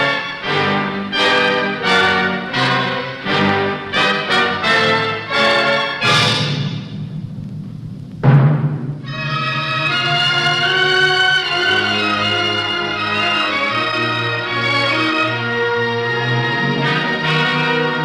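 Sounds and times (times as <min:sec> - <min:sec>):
orchestral trailer music: 0:00.0 - 0:18.0
loud low hit: 0:06.3 - 0:09.1.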